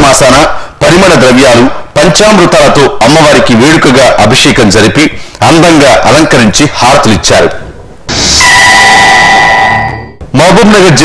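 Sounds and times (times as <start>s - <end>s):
loud rush of noise: 7.6s - 10.2s.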